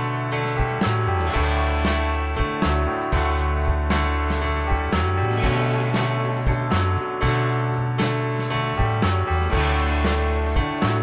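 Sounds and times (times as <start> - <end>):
guitar background music: 0.0 - 11.0
steady bass line: 0.0 - 11.0.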